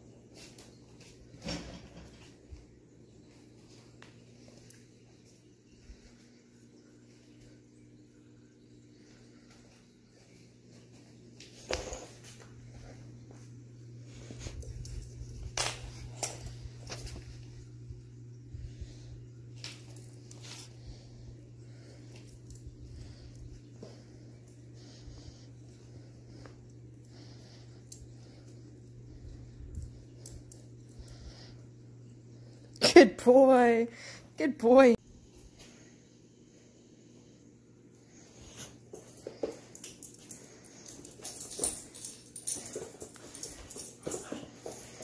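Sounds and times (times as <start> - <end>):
steady low hum: 0.0 - 45.0
collar tags jingling: 39.6 - 45.0.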